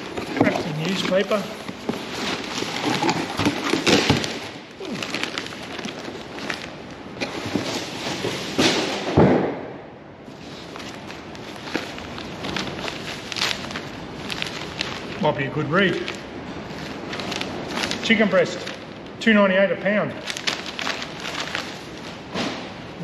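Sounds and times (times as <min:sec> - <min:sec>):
newspaper crinkling and rustling: 0:00.0 - 0:08.8, 0:10.3 - 0:19.0, 0:20.1 - 0:22.6.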